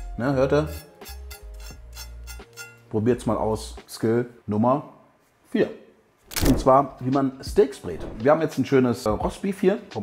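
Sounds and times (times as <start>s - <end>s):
background music: 0.0s - 4.0s, 6.3s - 10.0s.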